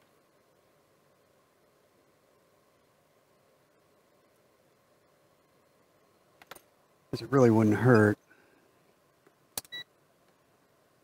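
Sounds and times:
short faint clicks: 9.2s - 10.4s.

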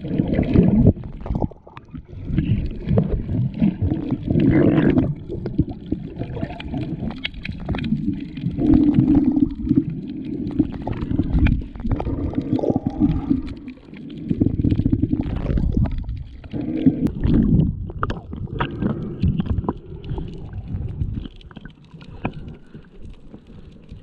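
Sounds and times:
underwater rumbling: 0.0s - 24.0s.

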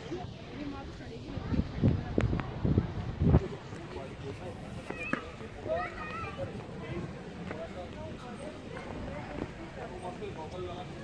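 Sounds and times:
people talking outdoors: 0.0s - 11.0s
wind buffeting microphone: 0.0s - 11.0s.

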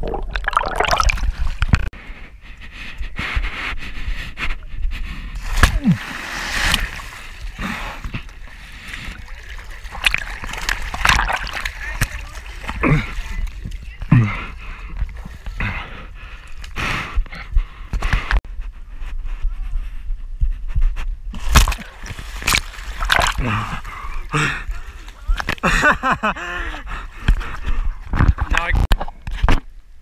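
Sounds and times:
pool water splashing: 0.0s - 1.8s, 5.4s - 14.2s, 21.6s - 25.6s.

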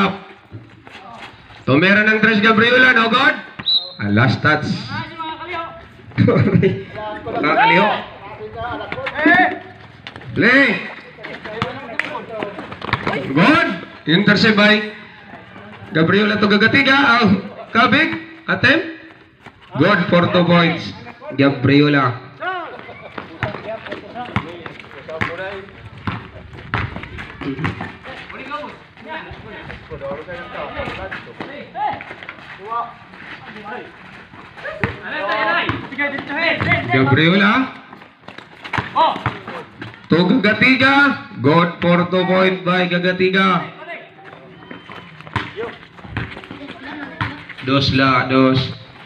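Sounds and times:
footsteps: 0.0s - 2.0s, 8.7s - 20.2s, 22.6s - 40.3s, 44.1s - 49.0s
players calling out: 6.8s - 37.9s
basketball dribbled on concrete: 11.3s - 13.6s, 23.2s - 28.0s, 34.8s - 37.0s, 37.9s - 40.0s, 45.2s - 48.0s.

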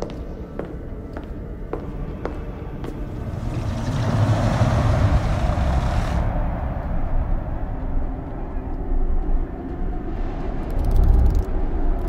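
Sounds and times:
low rumbling whoosh: 2.8s - 12.0s.

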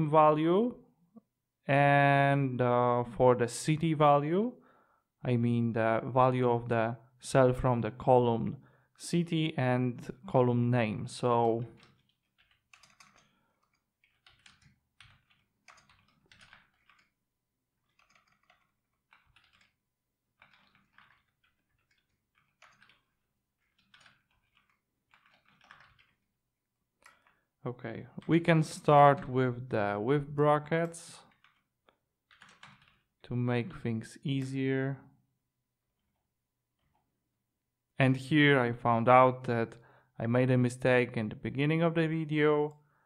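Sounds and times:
typing on computer keyboard: 11.4s - 17.2s, 17.8s - 26.3s, 27.0s - 27.4s, 30.8s - 31.7s, 32.3s - 33.1s.

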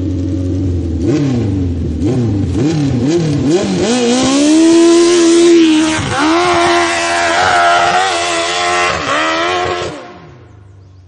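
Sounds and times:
dirt bike engine revving: 0.6s - 10.5s.

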